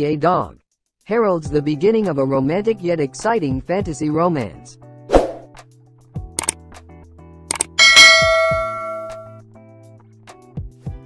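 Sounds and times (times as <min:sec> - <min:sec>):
short clicks: 0:07.5 - 0:07.8
held music tones: 0:07.8 - 0:09.3
sharp hit: 0:07.8 - 0:09.3
bright bell-like ding: 0:07.8 - 0:09.4.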